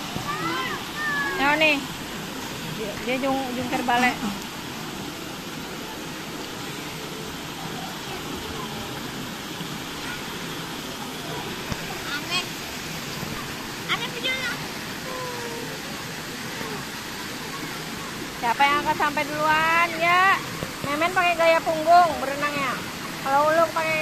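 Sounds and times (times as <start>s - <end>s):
pool water rushing and lapping: 0.0s - 24.0s
faint voices: 5.0s - 18.7s.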